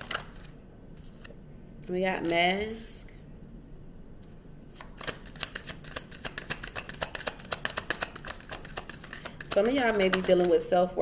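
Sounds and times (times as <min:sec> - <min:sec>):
cards being shuffled: 0:00.0 - 0:01.4, 0:04.7 - 0:10.8.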